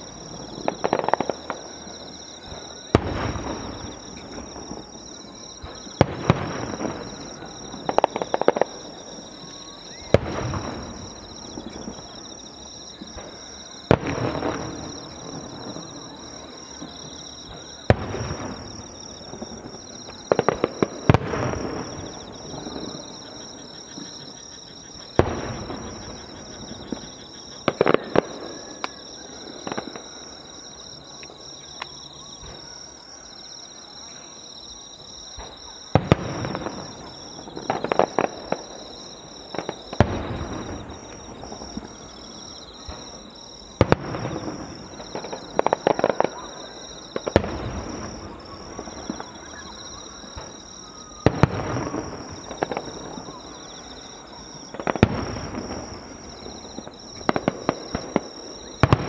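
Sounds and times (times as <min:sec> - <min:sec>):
insects chirring: 0:00.0 - 0:59.0.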